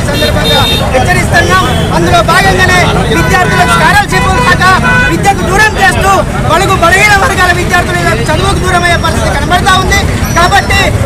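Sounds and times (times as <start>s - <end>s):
man speaking into microphones: 0.0s - 11.0s.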